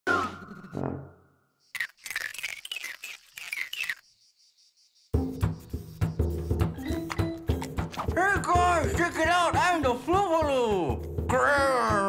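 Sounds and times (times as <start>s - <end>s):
cartoon chirps and squeaks: 1.8s - 4.0s.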